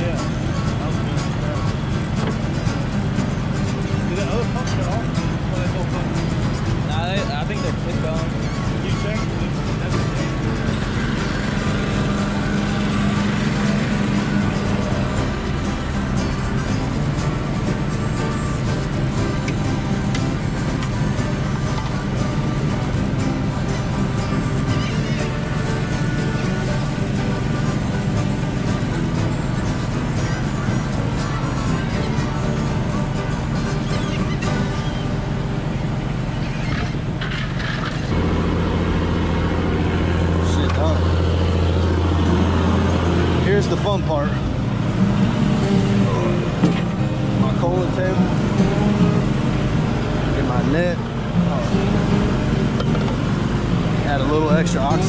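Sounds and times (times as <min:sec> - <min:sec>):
boat engine running: 0:00.0 - 0:55.0
gull calls: 0:24.6 - 0:25.5, 0:33.6 - 0:35.2.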